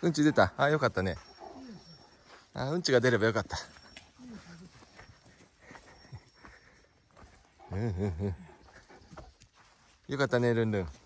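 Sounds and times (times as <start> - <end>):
dog whining: 1.3 - 2.2.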